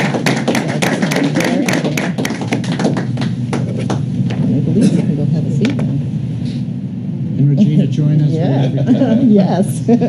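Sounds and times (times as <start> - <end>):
people clapping: 0.0 - 4.1.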